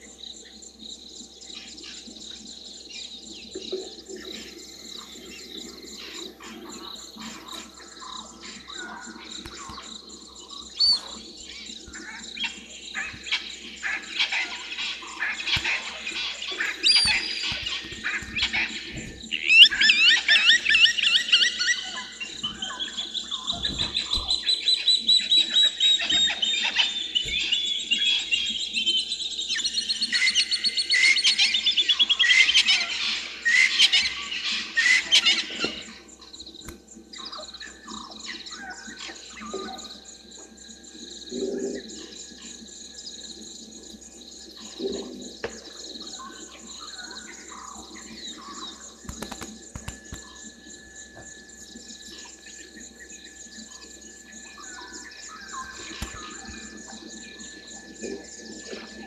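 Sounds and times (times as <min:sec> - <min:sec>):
birds calling and chirping: 0:00.0 - 0:59.0
faint insects: 0:00.0 - 0:59.0
rapid pulsed bird notes: 0:00.0 - 0:59.0.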